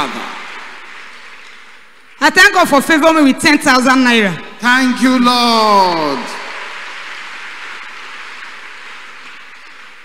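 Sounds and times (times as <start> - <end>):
congregation applauding: 0.0 - 10.0.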